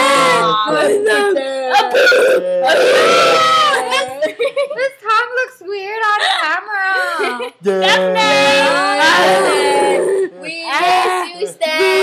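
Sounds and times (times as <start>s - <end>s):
people screaming and yelling: 1.8s - 4.1s
long held scream: 2.2s - 3.8s.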